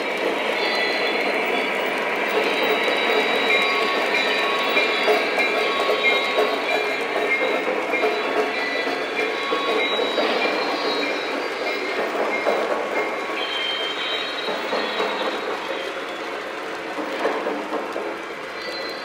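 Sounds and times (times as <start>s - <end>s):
model locomotive whine: 0.0s - 16.9s
model train wheels rumbling on rails: 0.0s - 19.0s.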